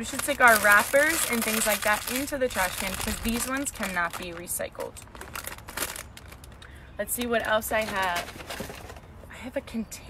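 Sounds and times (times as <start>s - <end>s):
plastic wrapper crinkling: 0.0s - 6.7s.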